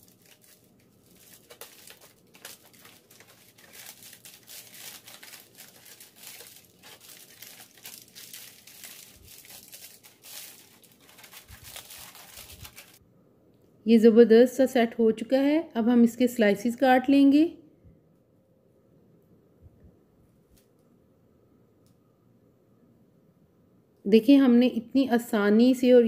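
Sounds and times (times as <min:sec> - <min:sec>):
aluminium foil crinkling: 0:00.0 - 0:13.0.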